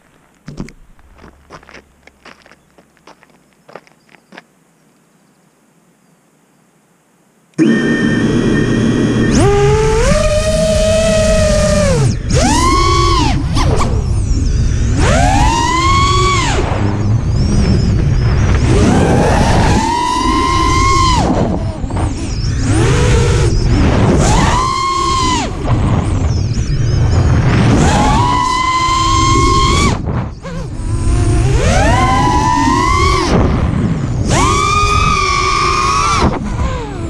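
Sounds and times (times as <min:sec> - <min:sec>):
quadcopter motors whining: 0:07.6 - 0:37.0.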